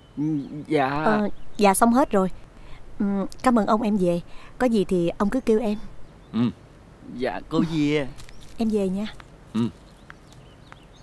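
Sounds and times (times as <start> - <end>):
man grunting: 6.4 - 6.6.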